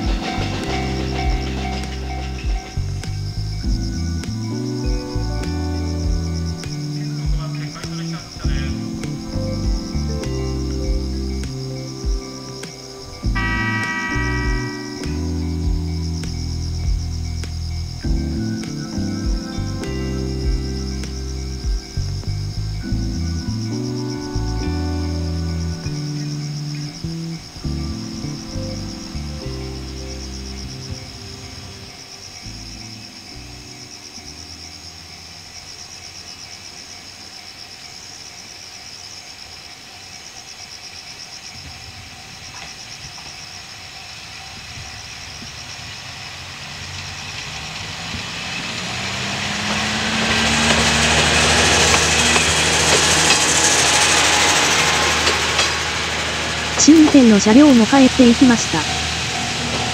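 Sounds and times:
train wheel noise: 0.0 - 5.0, 42.5 - 59.9
diesel railcar engine: 0.0 - 36.4, 42.6 - 59.9
crickets chirping: 0.0 - 59.9.

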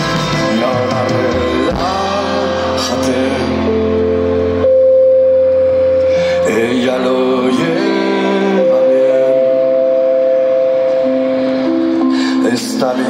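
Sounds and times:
live rock band: 0.0 - 13.0
sustained keyboard chords: 0.0 - 13.0.

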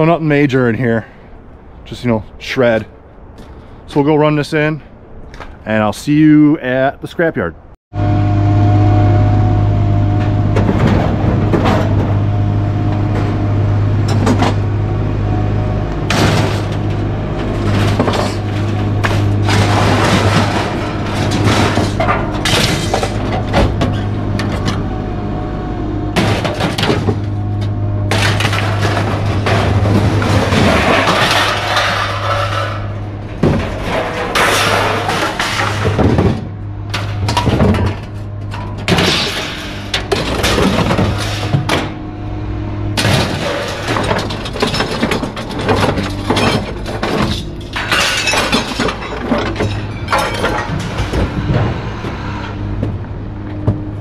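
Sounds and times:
low engine hum: 8.0 - 31.6, 32.8 - 47.8, 49.6 - 54.0
scrap metal clanking and crashing: 10.0 - 54.0.

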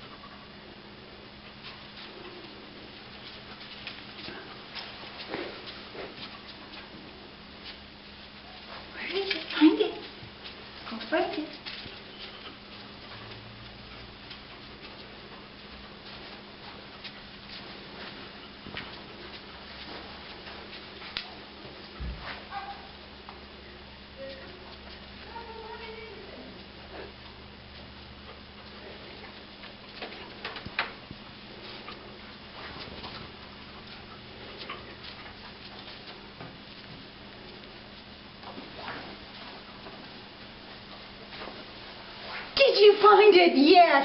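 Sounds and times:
low steady hum: 0.0 - 44.0
light ticks and rustling: 1.4 - 7.0, 7.6 - 22.5, 26.6 - 42.6.

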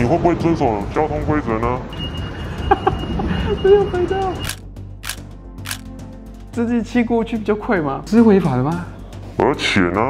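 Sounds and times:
quiet background music: 0.0 - 10.0
sharp noisy clicks: 4.4 - 6.0.

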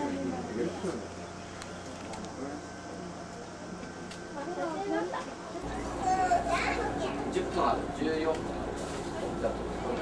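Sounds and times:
low steady train rumble: 0.0 - 10.0
passengers chattering: 0.0 - 10.0.

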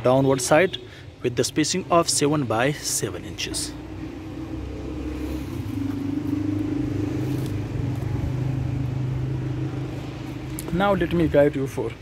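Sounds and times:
engine running: 3.4 - 11.3.

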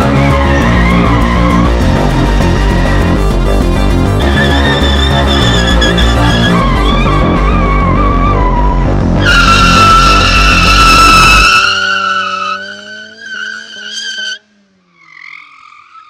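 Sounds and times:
car tyres squealing: 0.0 - 3.4, 4.1 - 16.0
car engine revving: 0.0 - 16.0.

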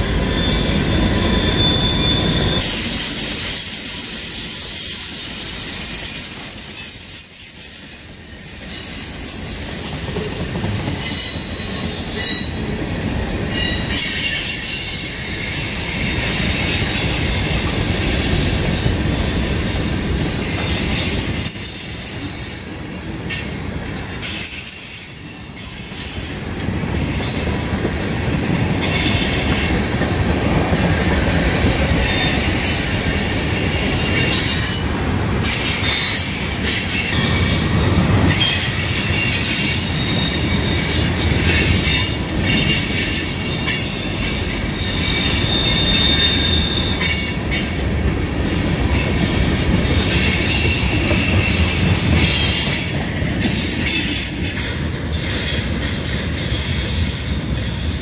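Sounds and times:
high wheel squeal: 0.0 - 27.7, 28.4 - 58.0
freight train wheels rumbling on rails: 0.0 - 58.0.

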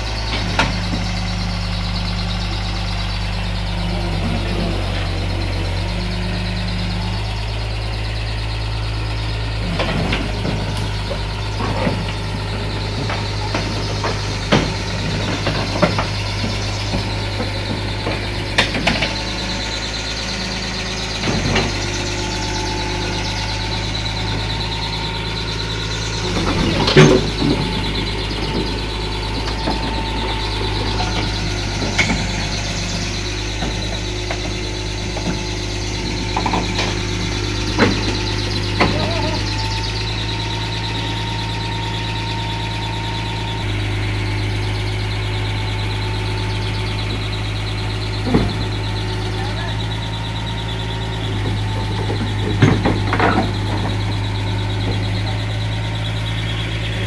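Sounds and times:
excavator diesel engine running: 0.0 - 57.0.

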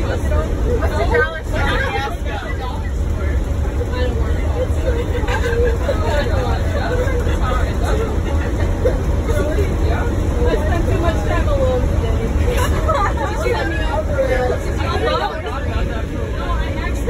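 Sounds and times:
bus engine rumble: 0.0 - 17.0
passengers chattering: 0.0 - 17.0.

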